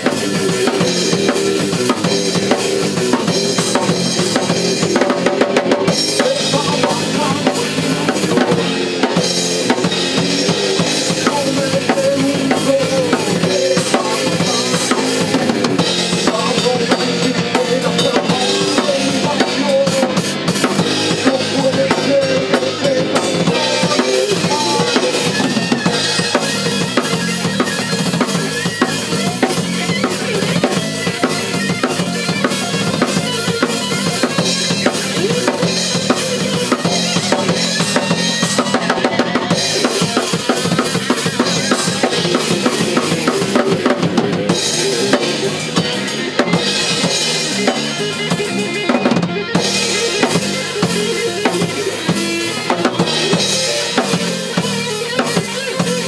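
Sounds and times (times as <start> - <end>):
drum kit: 0.0 - 56.0
electric guitar: 0.0 - 56.0
heavy metal band playing live: 0.0 - 56.0.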